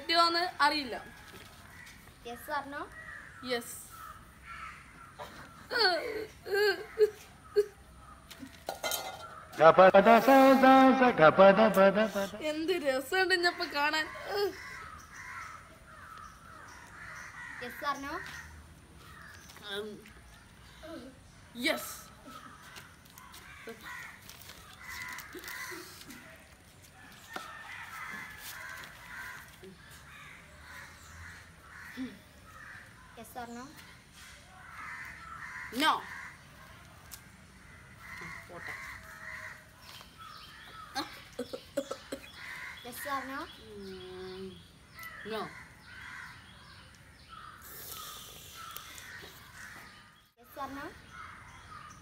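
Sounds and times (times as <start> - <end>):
crow cawing: 1.1 - 5.7, 13.4 - 19.4, 22.3 - 26.4, 27.3 - 33.2, 34.1 - 41.2, 42.3 - 44.0, 44.9 - 47.6, 48.6 - 50.0.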